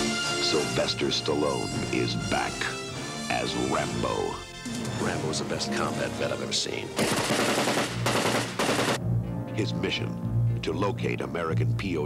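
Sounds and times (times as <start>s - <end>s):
rapid automatic gunfire: 7.0s - 9.0s.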